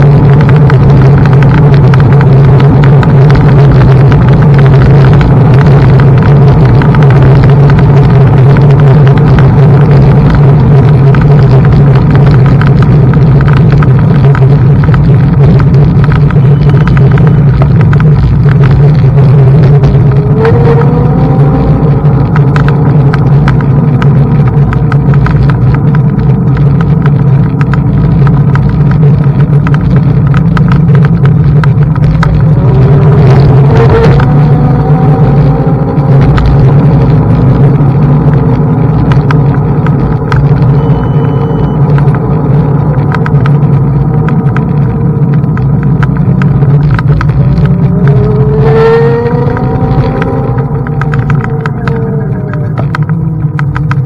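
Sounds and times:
electric scooter rumble: 0.0 - 54.0
small rattles and clicks: 0.0 - 54.0.

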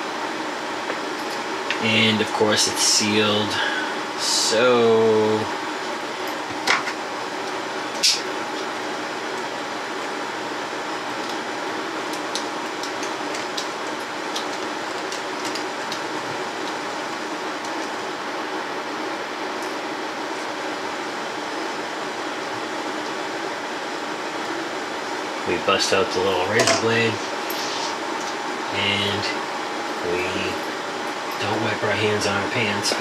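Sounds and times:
ventilation fan noise: 0.0 - 33.0.

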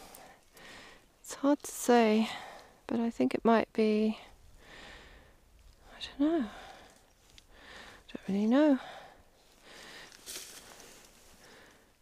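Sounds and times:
faint rustling: 9.4 - 11.8.

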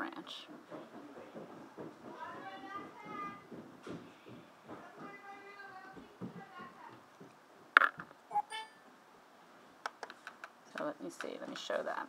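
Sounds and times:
low household noise: 0.0 - 12.0.

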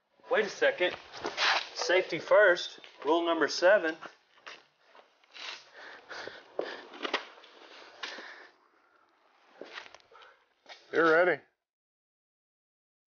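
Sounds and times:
fabric and straps scuffing: 0.8 - 2.2.

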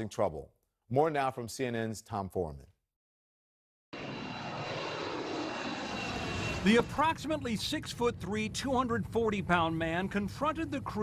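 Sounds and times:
faint high whine: 4.0 - 10.8
jet airliner engine noise: 4.0 - 11.0.

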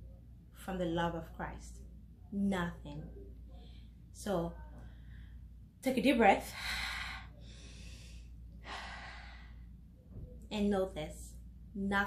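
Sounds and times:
woman breathing in and out: 6.4 - 10.0.

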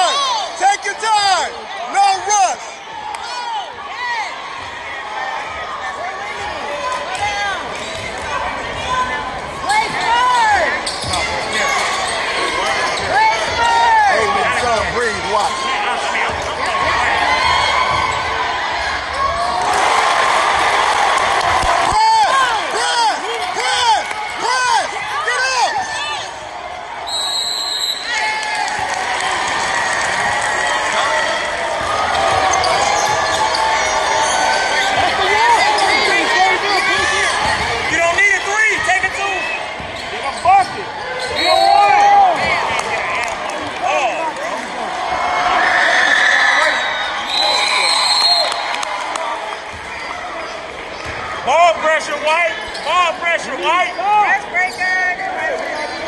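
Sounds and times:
crowd noise in a gym: 0.0 - 56.0
sneakers squeaking: 7.6 - 13.7, 31.5 - 38.0, 38.7 - 42.8, 52.4 - 56.0
shoe squeaks on hardwood court: 10.8 - 13.2
referee's whistle: 27.0 - 28.2, 41.2 - 42.0, 46.4 - 48.7.

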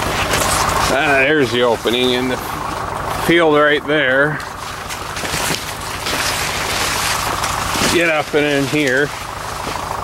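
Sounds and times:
corn leaves rustling: 0.0 - 3.0, 4.2 - 10.0.

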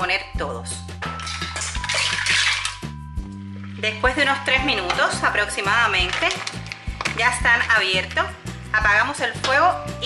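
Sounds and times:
background music: 0.0 - 10.0
mussel shells clattering in pot: 1.2 - 2.9, 5.9 - 7.6.

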